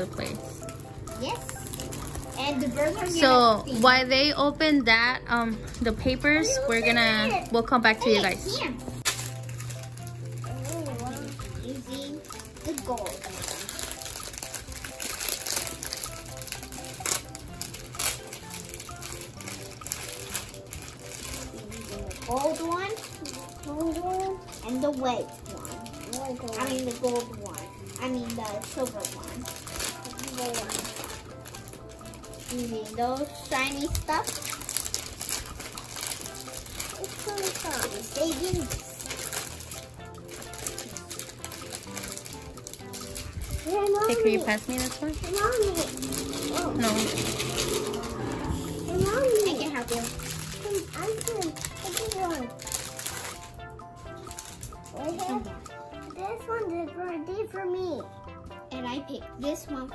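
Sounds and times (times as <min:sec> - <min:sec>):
plastic packaging crinkling: 0:00.0 - 0:56.4
background music: 0:00.0 - 0:59.9
children's voices: 0:02.3 - 0:03.6, 0:43.6 - 0:52.6.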